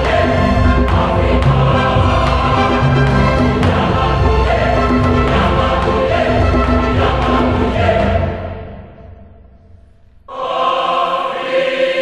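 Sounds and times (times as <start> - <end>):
low accompaniment: 0.0 - 10.3
choir singing held chords: 0.0 - 12.0.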